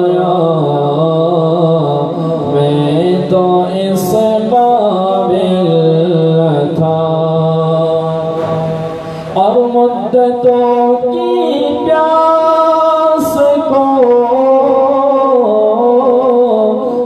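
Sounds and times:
man singing unaccompanied: 0.0s - 17.0s
singer breathing: 8.9s - 9.4s.

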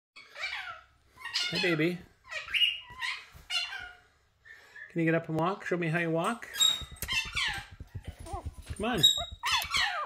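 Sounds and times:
puppy whimpering cries: 6.7s - 10.0s.

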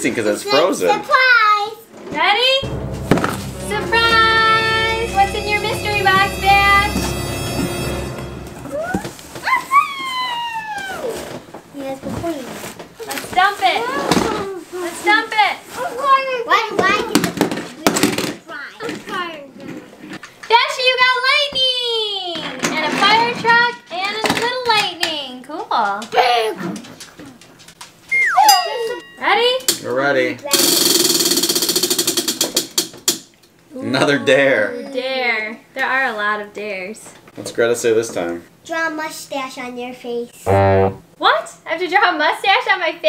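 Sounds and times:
short musical jingle: 2.6s - 9.4s
children squealing excitedly: 9.0s - 11.2s, 28.1s - 29.0s.

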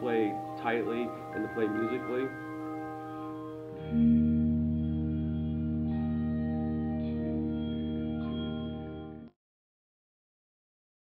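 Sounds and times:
handbells ringing a chord: 0.0s - 9.3s.

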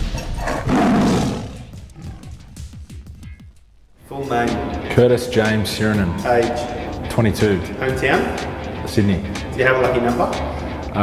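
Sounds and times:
intro music: 0.0s - 11.0s
tiger roar: 0.1s - 2.7s.

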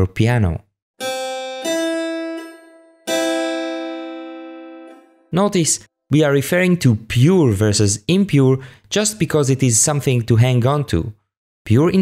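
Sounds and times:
piano major third: 1.0s - 5.4s.

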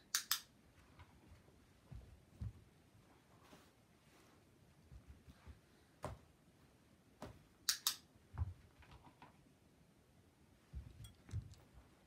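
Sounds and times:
light clicks and soft knocks: 10.6s - 12.0s.

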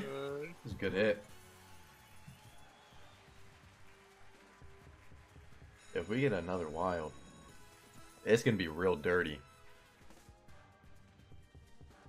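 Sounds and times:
slot game background music: 5.8s - 11.8s.

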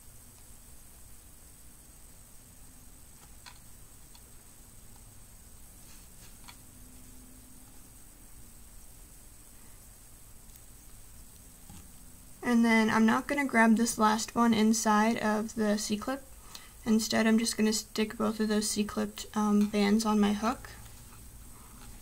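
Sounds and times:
low room hum: 0.0s - 22.0s.

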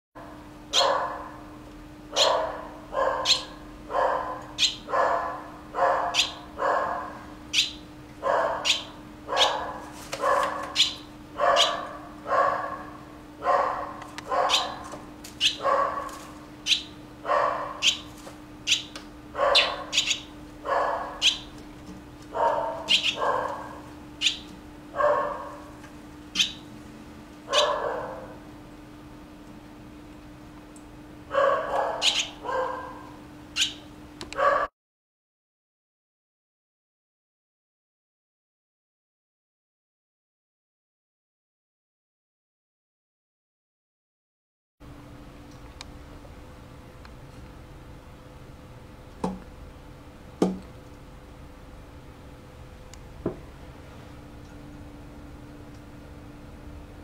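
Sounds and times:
steady low hum: 0.2s - 34.5s, 44.8s - 57.0s
animal calling: 0.7s - 1.2s, 2.1s - 12.8s, 13.5s - 18.1s, 18.7s - 21.5s, 22.4s - 25.6s, 26.4s - 26.6s, 27.5s - 28.4s, 31.4s - 33.0s, 33.6s - 33.8s.

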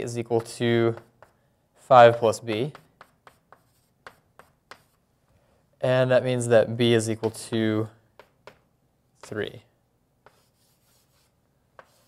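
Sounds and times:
pen strokes writing: 2.7s - 5.0s, 10.3s - 12.0s.

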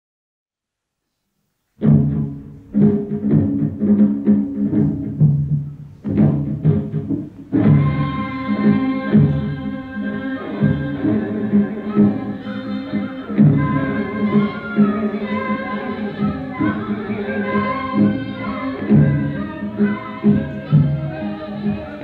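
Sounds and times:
drum strokes: 1.8s - 22.0s
low steady tones: 1.9s - 22.0s.

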